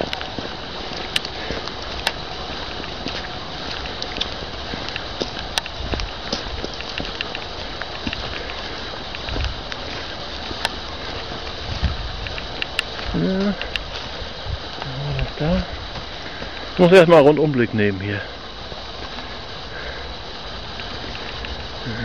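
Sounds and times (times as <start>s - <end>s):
footsteps on forest path: 0.0s - 22.0s
light rain hissing: 0.0s - 22.0s.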